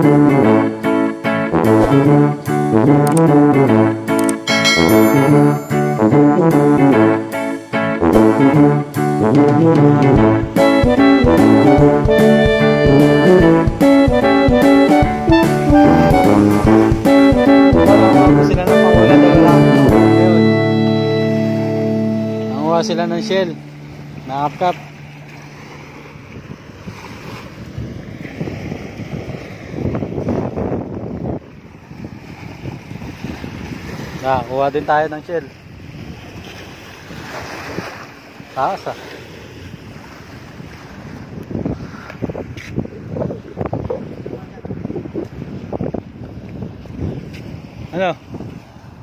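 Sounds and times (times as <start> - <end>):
small waves washing on sand: 23.4 - 49.0
wind buffeting microphone: 23.6 - 38.5, 39.2 - 49.0.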